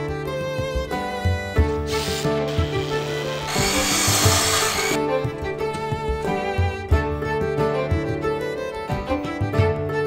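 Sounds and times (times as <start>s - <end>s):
drill boring into wood: 1.9s - 5.0s.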